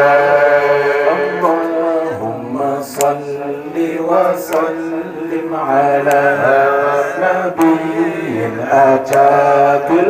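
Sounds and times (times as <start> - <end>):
man chanting through a microphone: 0.0 - 10.0
sharp click: 2.9 - 3.2, 4.4 - 4.8, 6.0 - 6.3.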